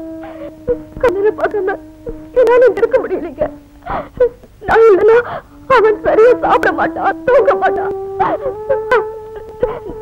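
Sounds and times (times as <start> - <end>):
woman crying: 0.2 - 10.0.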